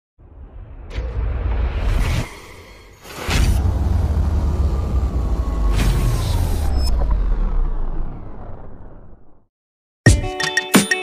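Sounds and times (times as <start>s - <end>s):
deep rumble: 0.2s - 9.5s.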